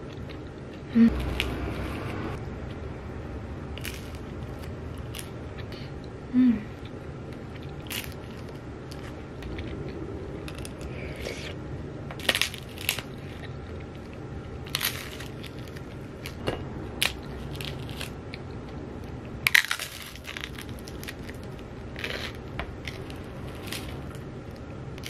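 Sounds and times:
low room hum: 0.0 - 25.0
crunchy biting and chewing: 12.2 - 18.6, 19.4 - 25.0.

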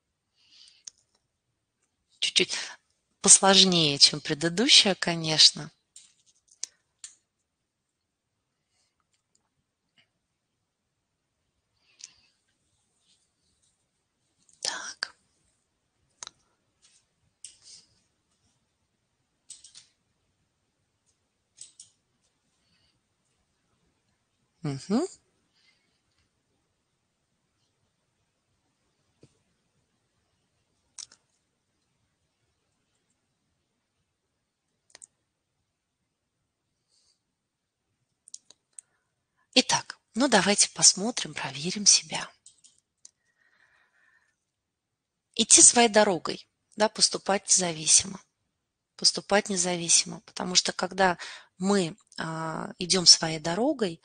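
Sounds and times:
breathy whisper into microphone: 14.5 - 15.3
sharp clicks: 19.5 - 20.0, 21.6 - 22.0.

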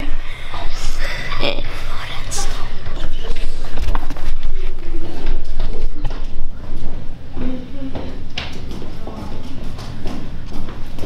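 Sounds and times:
quick footsteps on tiled floor: 8.0 - 11.0.

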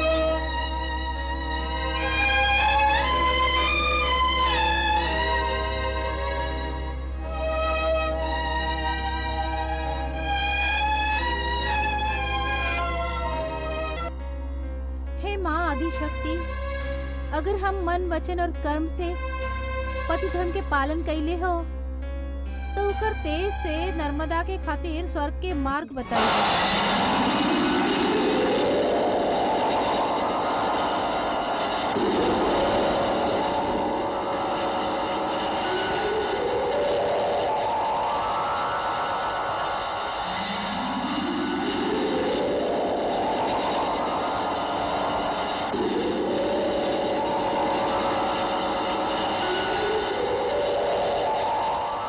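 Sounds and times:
overlapping rising tones: 26.1 - 52.0
steady rushing noise: 26.2 - 52.0.

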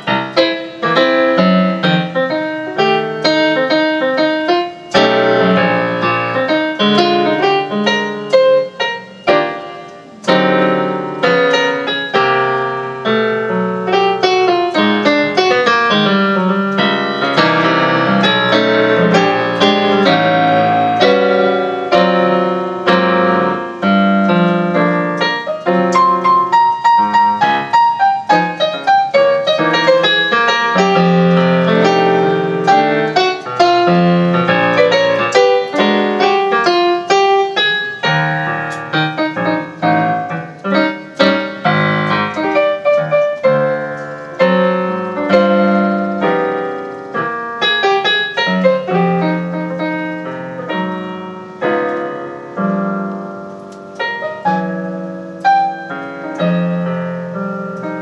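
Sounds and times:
jazz piano ballad: 0.0 - 58.0.

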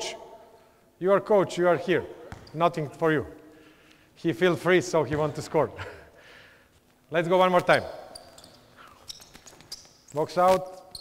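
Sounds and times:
basketball bouncing on court floor: 2.2 - 2.6
short high squeaks: 7.7 - 11.0.

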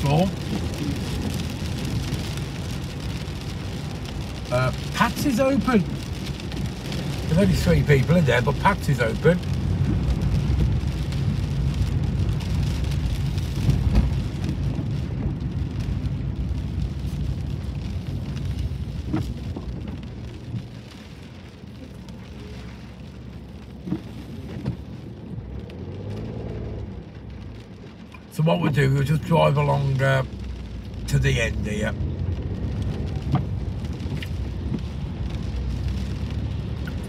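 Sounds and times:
rain on a car: 0.0 - 37.0
road and engine rumble: 0.0 - 37.0.

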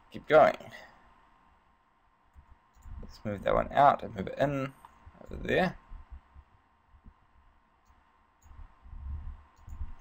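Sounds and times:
computer mouse clicks: 2.3 - 3.0, 7.8 - 8.6, 9.5 - 10.0
low thumps and rumble on microphone: 5.0 - 7.2, 8.5 - 10.0.

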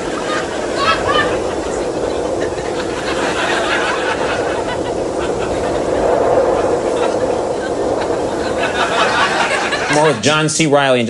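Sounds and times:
audience laughing: 0.0 - 10.4.

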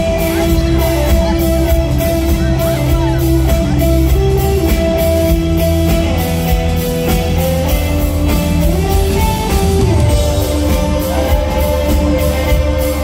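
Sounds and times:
bass line: 0.0 - 13.0
drum beat: 0.0 - 13.0
electric guitar sustained notes: 0.0 - 13.0.

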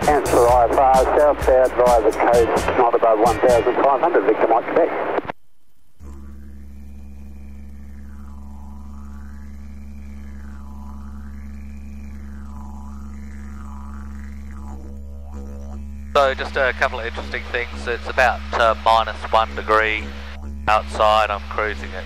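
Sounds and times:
didgeridoo drone: 6.0 - 22.0.

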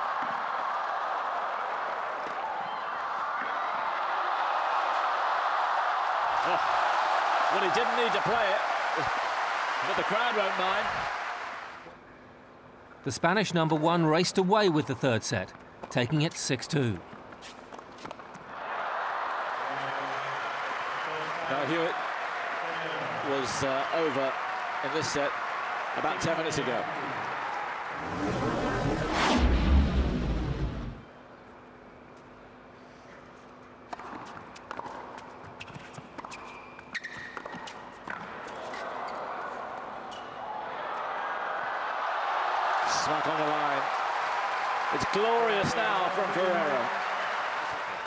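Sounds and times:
crowd applause: 0.0 - 11.9, 18.5 - 29.2, 41.2 - 48.0
crowd noise: 18.5 - 31.4, 38.6 - 48.0
whooshing music sting: 28.0 - 31.0.

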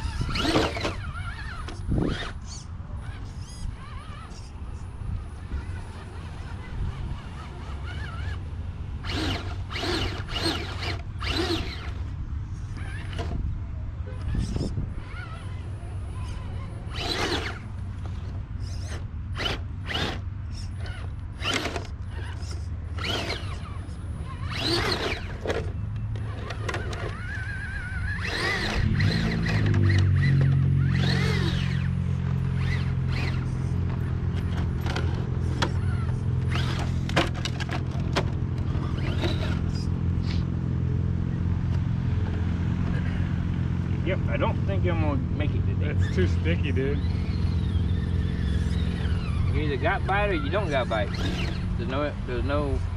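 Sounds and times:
electric motor whining: 0.0 - 13.4, 14.2 - 52.9
tires scraping on rock: 0.0 - 52.9.

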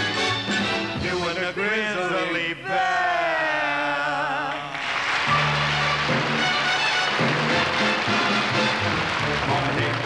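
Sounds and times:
show band instrumental music: 0.0 - 2.2, 4.2 - 10.0.

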